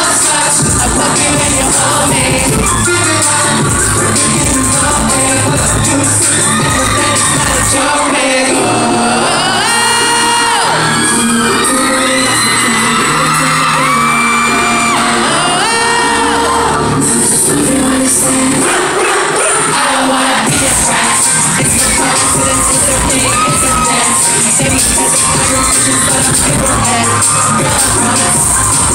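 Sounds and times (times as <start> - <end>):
audience cheering and screaming: 0.0 - 28.9
live pop song over pa: 0.0 - 28.9
person singing gliding vocals: 0.0 - 28.9.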